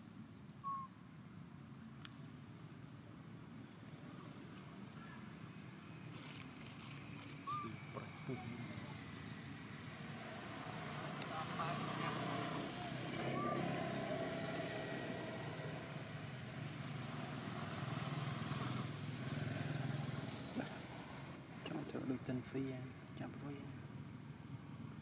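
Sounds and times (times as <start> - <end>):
traffic passing: 2.9 - 25.0.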